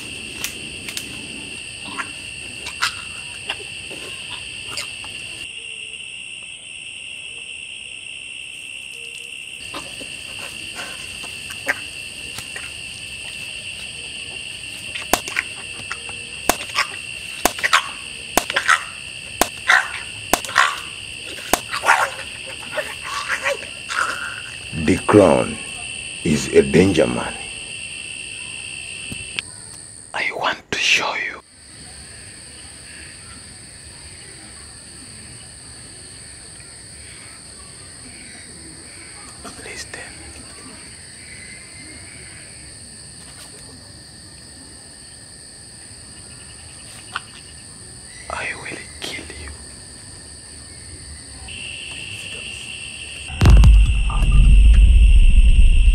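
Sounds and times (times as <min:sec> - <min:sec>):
frogs croaking: 0:00.0 - 0:43.2, 0:45.0 - 0:55.9
crickets chirring: 0:00.0 - 0:55.9
insects trilling: 0:00.0 - 0:55.9
sharp clicks: 0:18.4 - 0:18.6, 0:20.3 - 0:20.6
sharp click: 0:20.3 - 0:20.5.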